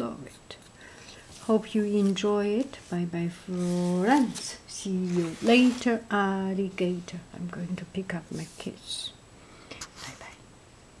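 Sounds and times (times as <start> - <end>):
low room noise: 0.0 - 11.0
faint whispered speech: 9.8 - 10.4.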